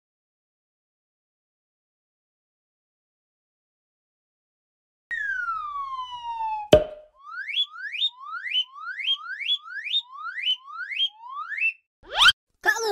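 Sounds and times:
falling whistle tone: 0:05.1 - 0:12.4
rising whistle chirps: 0:05.1 - 0:12.4
cartoon pop: 0:06.6 - 0:07.2, 0:12.1 - 0:12.4.

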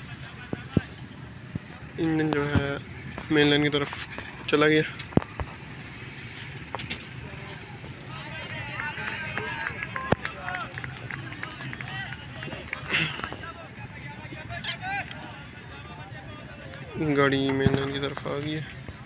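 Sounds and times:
diesel locomotive rumble: 0:00.0 - 0:19.0.

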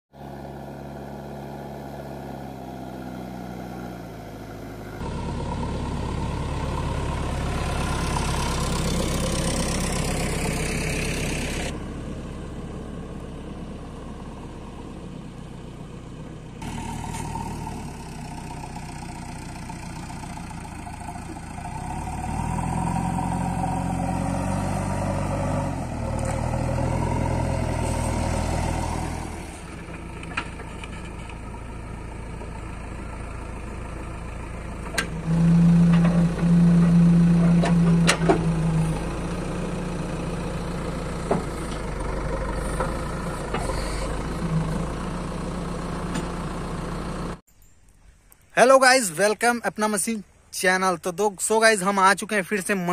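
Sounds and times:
diesel engine running and revving: 0:00.1 - 0:47.4.

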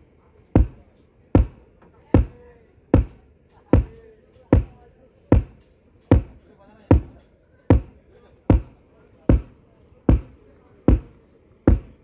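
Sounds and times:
kick drum thumps through speakers: 0:00.6 - 0:00.8, 0:01.4 - 0:01.6, 0:02.2 - 0:02.4, 0:03.0 - 0:07.9, 0:08.5 - 0:08.7, 0:09.3 - 0:09.5, 0:10.1 - 0:11.1, 0:11.7 - 0:12.0.

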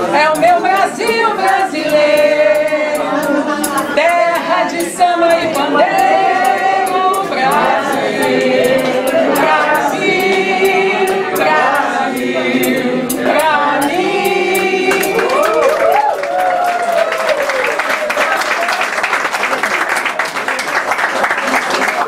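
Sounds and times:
woman singing: 0:00.0 - 0:08.0, 0:13.1 - 0:16.0
voices joining in singing: 0:00.0 - 0:18.3
sharp claps: 0:14.6 - 0:22.0
room applauding: 0:14.9 - 0:22.0.

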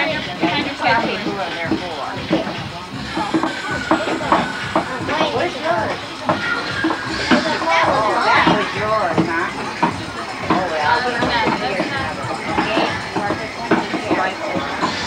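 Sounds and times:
adults talking: 0:00.0 - 0:15.0
children chattering: 0:00.0 - 0:15.0.

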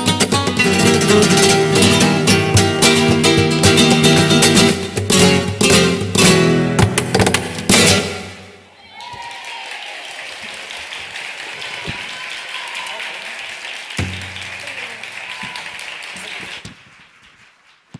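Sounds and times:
audience applauding: 0:00.6 - 0:04.8, 0:08.7 - 0:17.9.

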